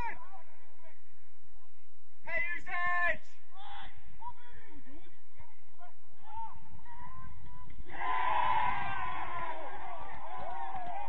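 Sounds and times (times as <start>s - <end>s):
distant footballers shouting: 2.2s - 11.0s.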